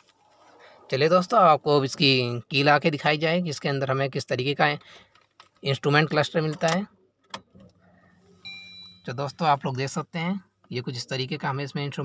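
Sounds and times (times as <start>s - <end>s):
high electronic beep: 8.4s - 9.4s.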